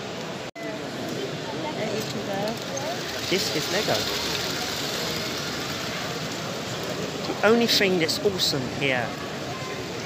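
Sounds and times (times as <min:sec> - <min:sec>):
toy train whirring rattle: 0:02.0 - 0:07.0.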